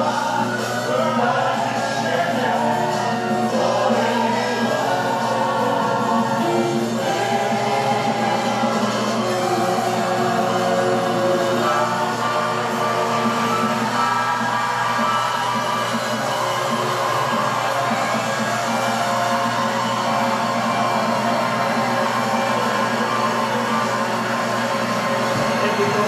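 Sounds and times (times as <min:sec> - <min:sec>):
instrumental electronic keyboard music: 0:00.0 - 0:26.0.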